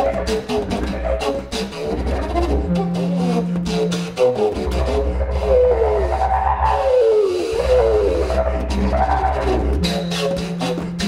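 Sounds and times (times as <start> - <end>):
contrabass flute sliding tones: 0.0 - 11.0
didgeridoo drone: 0.0 - 11.0.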